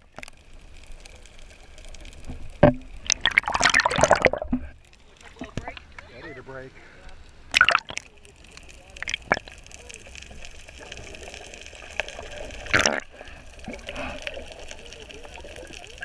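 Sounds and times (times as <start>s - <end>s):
muffled underwater wash: 0.0s - 16.0s
water sloshing and splashing: 2.2s - 6.0s, 7.5s - 8.1s, 10.2s - 16.0s.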